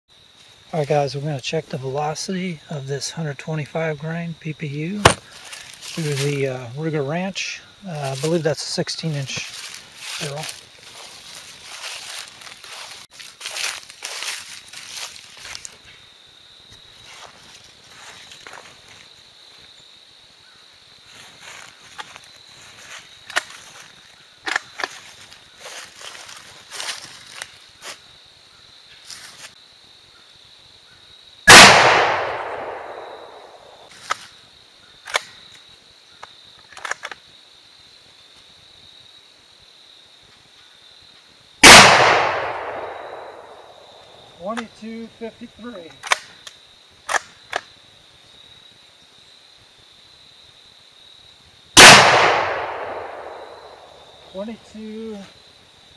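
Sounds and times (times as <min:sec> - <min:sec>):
rifle shots with echo: 0:05.0 - 0:05.2, 0:31.5 - 0:33.9, 0:41.6 - 0:44.0, 0:51.8 - 0:54.1
rustling in dry leaves: 0:05.2 - 0:06.4, 0:09.2 - 0:15.9, 0:16.9 - 0:19.1, 0:24.9 - 0:28.1, 0:29.0 - 0:29.6.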